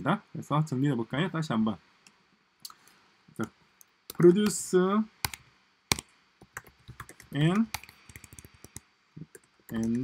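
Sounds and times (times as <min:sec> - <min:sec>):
typing on computer keyboard: 0:05.2 - 0:10.0.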